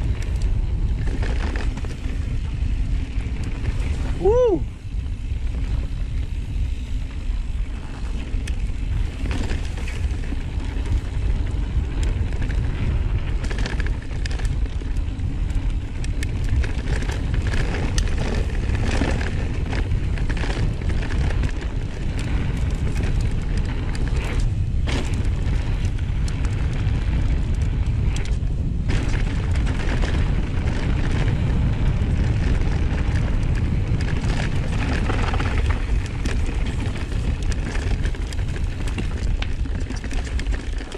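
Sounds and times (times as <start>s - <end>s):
bike clacks and rattles: 0.0s - 40.9s
tyre noise on dirt trail: 0.0s - 40.9s
wind rumbling on microphone: 0.0s - 40.9s.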